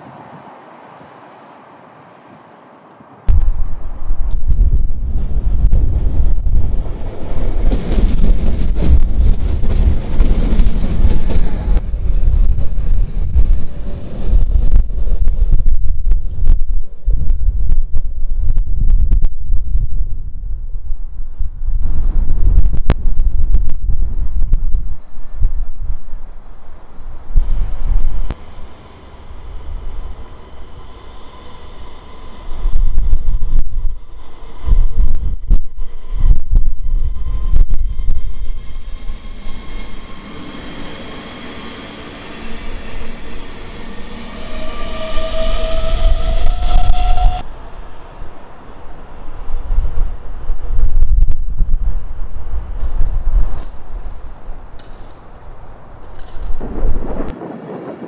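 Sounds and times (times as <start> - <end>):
wind buffeting microphone: 2.3 - 58.0
electric train motor whine: 27.4 - 50.8.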